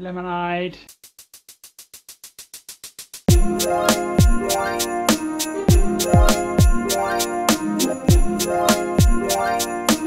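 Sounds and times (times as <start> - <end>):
background music: 3.3 - 10.0.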